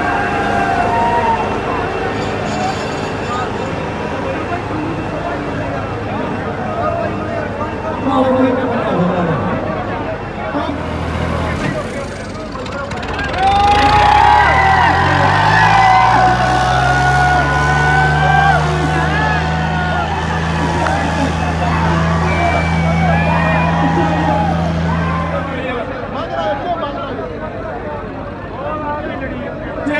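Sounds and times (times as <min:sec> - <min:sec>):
crowd shouting and cheering: 0:00.0 - 0:29.9
tractor diesel engines revving: 0:00.0 - 0:29.9.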